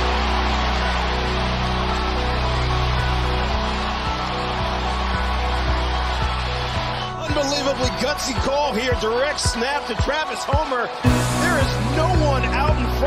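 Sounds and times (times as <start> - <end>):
background music: 0.0 - 13.0
stadium crowd cheering: 0.0 - 13.0.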